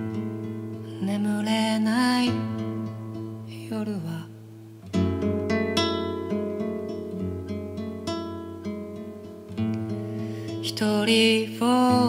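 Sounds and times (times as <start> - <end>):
acoustic guitar folk song: 0.0 - 12.0.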